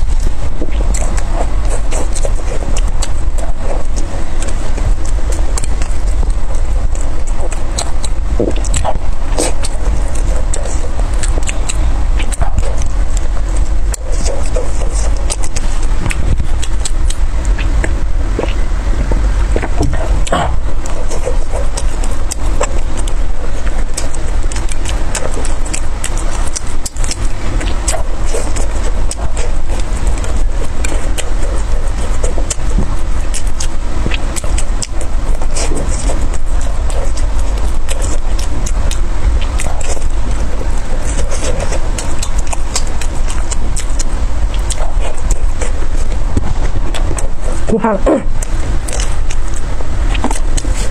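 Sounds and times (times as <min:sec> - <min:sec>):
chewing and wet mouth clicks: 0:00.0 - 0:50.9
steady low rumble: 0:00.0 - 0:50.9.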